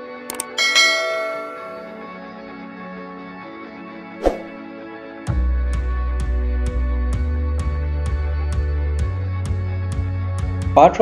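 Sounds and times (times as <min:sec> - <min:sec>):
bright bell chime: 0:00.5 - 0:02.2
soft background music: 0:10.7 - 0:11.0.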